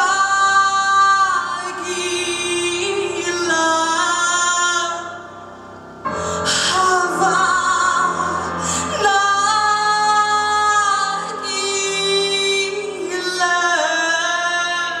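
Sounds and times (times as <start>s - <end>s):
woman singing with vibrato: 0.0s - 5.4s, 6.1s - 15.0s
musical accompaniment: 0.0s - 15.0s.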